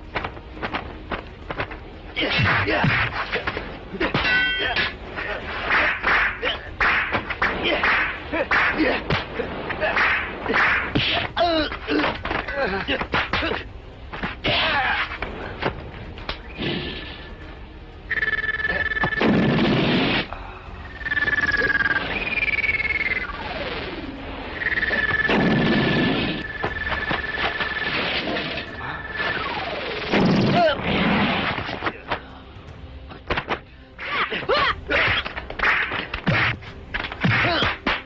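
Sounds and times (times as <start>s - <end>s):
pulsing electronic whine: 18.1s - 20.0s, 20.8s - 30.1s.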